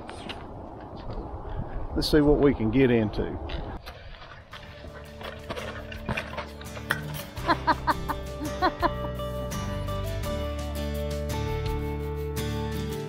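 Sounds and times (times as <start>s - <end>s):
background music held tones: 5.0s - 13.0s.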